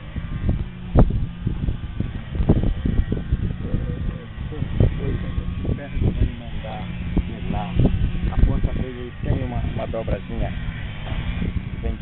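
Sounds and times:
men talking indistinctly: 3.4 - 12.0.

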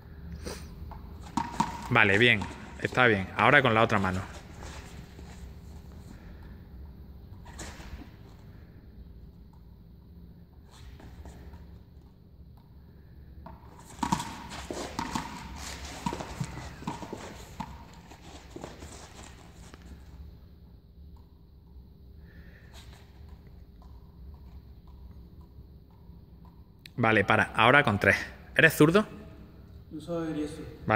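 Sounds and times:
footsteps on hard floor: 13.8 - 19.9.

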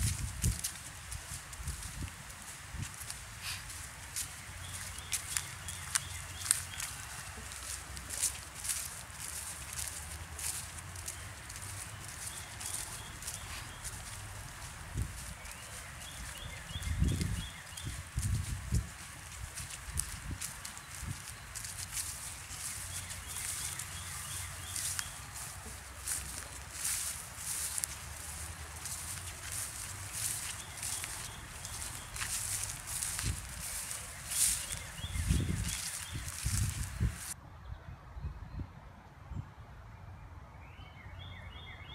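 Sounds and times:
footsteps through grass and leaves: 0.0 - 37.4.

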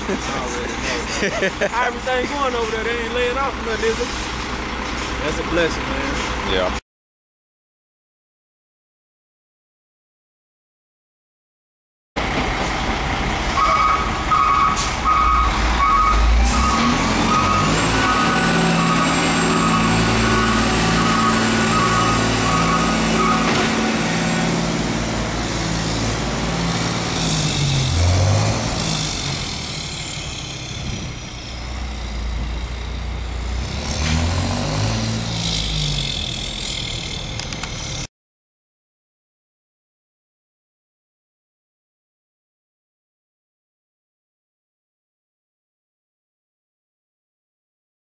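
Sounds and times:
truck diesel engine pulling away: 0.0 - 6.8, 12.2 - 38.1.

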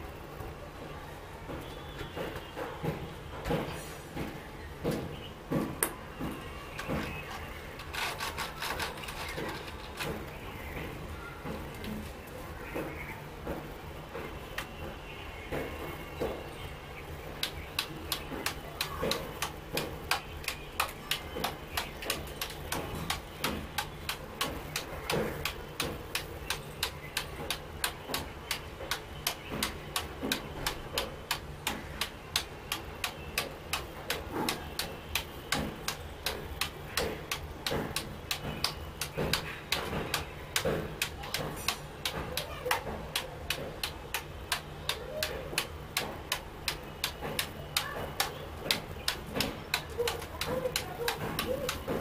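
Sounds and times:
ball bouncing on keyboard: 4.2 - 12.0, 17.2 - 52.0.

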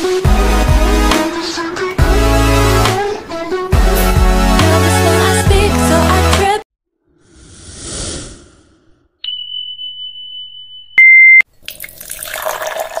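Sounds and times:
high beep: 9.2 - 11.4.

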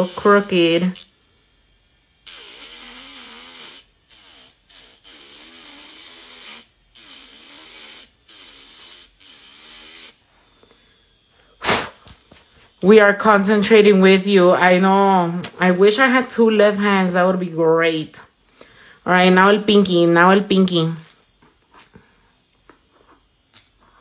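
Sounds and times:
electric nail drill grinding: 0.0 - 24.0.

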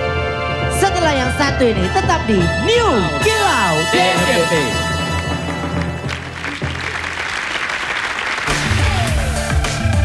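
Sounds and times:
show music: 0.0 - 10.0
audience applauding: 5.5 - 10.0.

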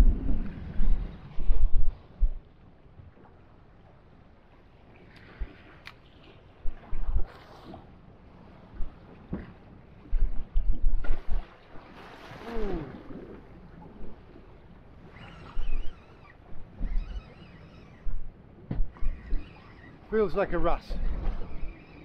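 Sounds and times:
wind buffeting microphone: 0.0 - 2.6
waves slapping against boat hull: 0.0 - 22.0.

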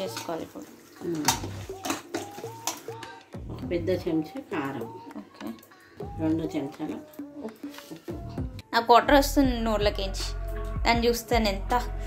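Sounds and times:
person talking: 3.6 - 8.2.

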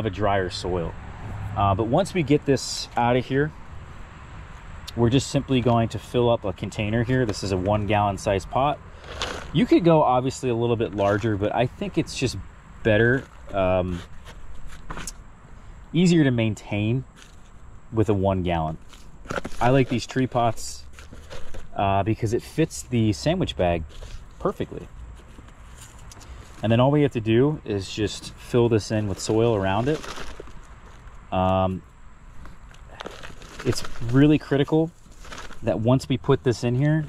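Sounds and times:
plastic plant pot clicks and rustles: 5.0 - 15.2, 18.6 - 22.4, 27.8 - 31.8, 32.4 - 37.0.

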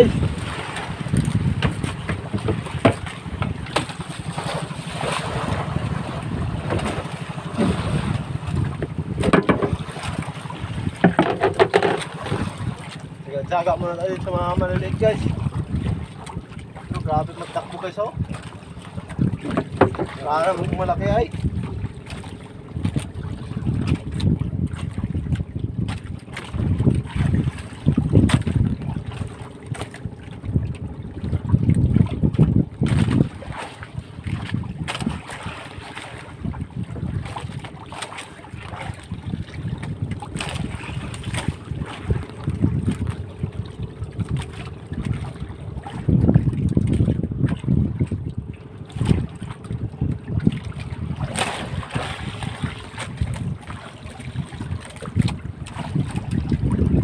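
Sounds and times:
wind buffeting microphone: 0.0 - 57.0
small knocks: 8.8 - 9.8, 11.0 - 12.4, 19.4 - 20.2.

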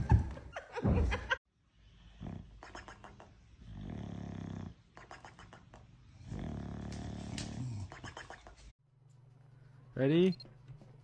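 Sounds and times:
dog snoring: 2.2 - 2.4, 3.6 - 4.8, 6.2 - 7.8.

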